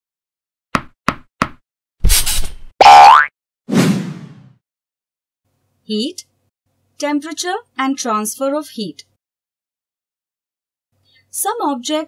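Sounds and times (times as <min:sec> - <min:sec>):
springy boing: 0:02.8 - 0:03.3
short swish: 0:03.7 - 0:04.6.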